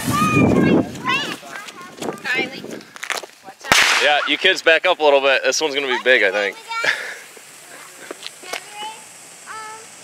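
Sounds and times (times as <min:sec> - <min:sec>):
firework fountain hissing: 0:00.0 - 0:01.6, 0:02.2 - 0:10.0
firework crackling pops: 0:02.0 - 0:04.6, 0:06.5 - 0:10.0.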